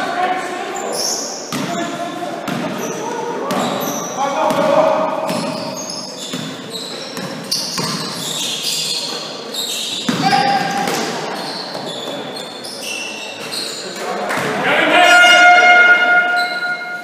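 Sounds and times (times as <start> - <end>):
voices in a hall: 0.0 - 17.0
sneakers squeaking: 0.7 - 17.0
basketball bouncing: 4.5 - 5.6
loud held tone: 14.9 - 17.0.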